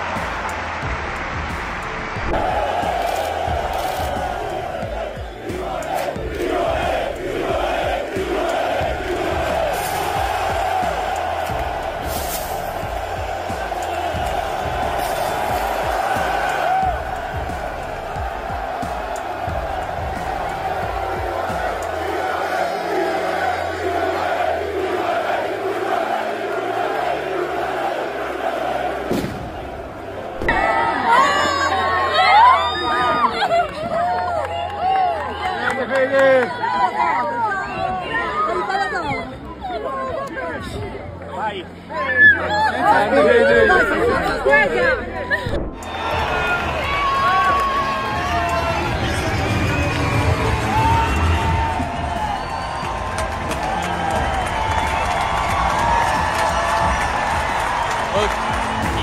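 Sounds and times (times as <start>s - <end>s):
background music with low beat: 0.0s - 30.9s, 43.6s - 59.0s
crowd chanting and singing: 0.0s - 59.0s.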